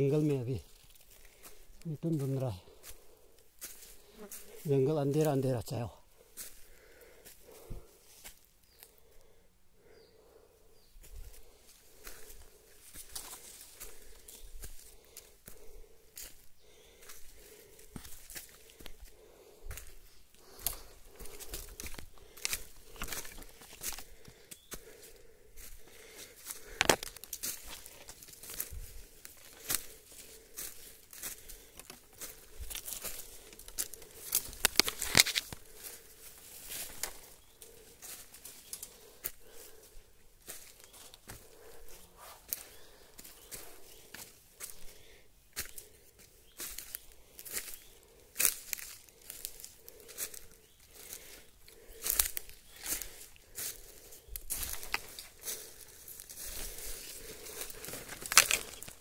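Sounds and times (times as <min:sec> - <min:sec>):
footsteps crunching through leaf litter: 0:00.0 - 0:09.0, 0:11.0 - 0:59.0
dry leaves and twigs crackling: 0:00.0 - 0:59.0.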